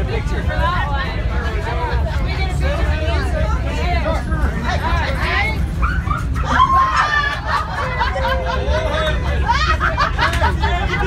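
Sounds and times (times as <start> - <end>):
low train rumble: 0.0 - 11.0
passengers talking: 0.0 - 11.0.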